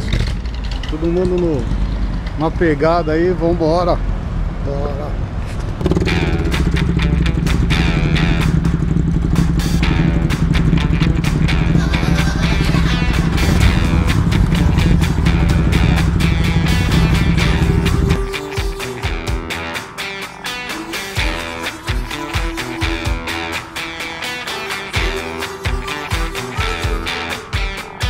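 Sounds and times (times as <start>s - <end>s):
motorcycle engine running: 5.6s - 19.8s
background music with a beat: 6.1s - 28.0s.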